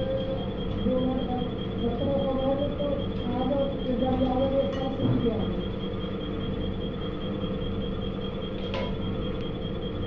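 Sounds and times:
pump motor whine: 0.0 - 10.0.

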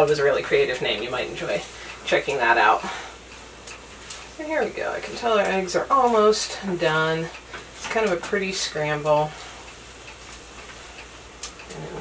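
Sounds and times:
faint steady hiss: 0.0 - 12.0
utensil scraping frying pan: 11.6 - 12.0.

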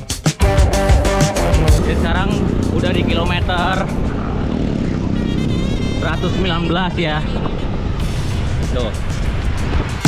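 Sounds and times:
wind buffeting microphone: 1.7 - 10.0.

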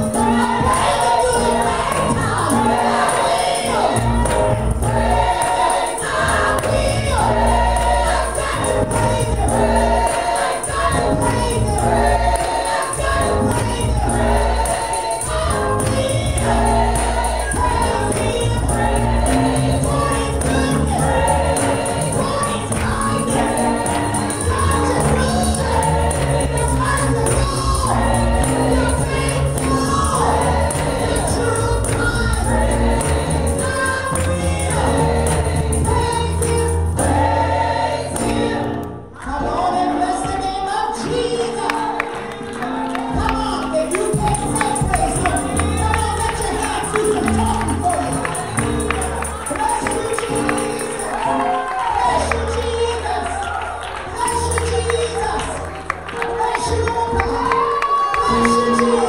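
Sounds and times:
tambourine shaking: 0.0 - 38.2, 43.8 - 52.3
keyboard with bass line: 0.0 - 39.2, 44.1 - 53.3
group singing gospel in harmony: 0.0 - 59.0.

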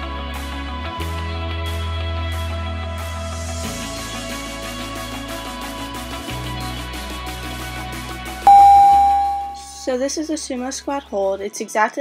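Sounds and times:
electronic interval timer beep: 8.5 - 9.8.

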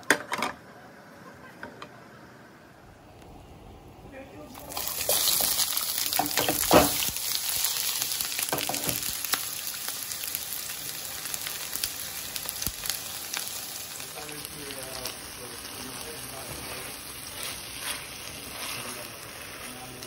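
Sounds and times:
onions sizzling in hot oil: 4.4 - 20.0
knocks of food in skillet: 4.8 - 20.0.

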